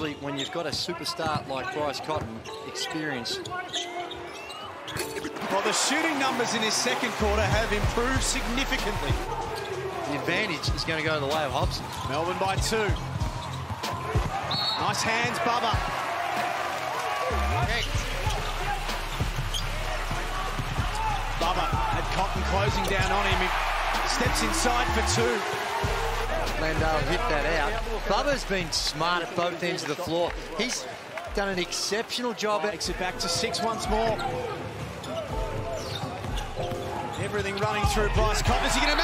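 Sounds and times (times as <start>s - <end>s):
sneakers squeaking: 0.0s - 5.6s, 9.2s - 16.4s, 17.6s - 21.2s, 33.4s - 39.0s.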